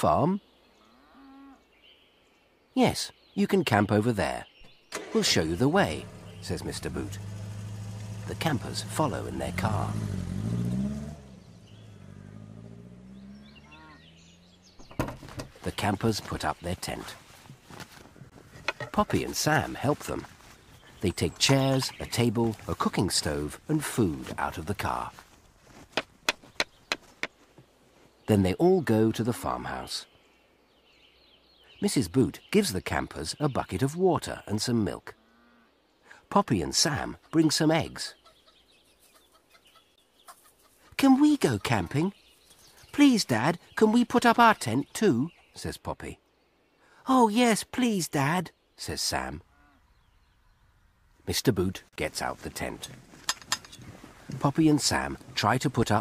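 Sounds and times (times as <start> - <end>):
birds chirping: 0.0 - 56.0
car engine running: 5.9 - 13.6
hens clucking: 38.2 - 42.1.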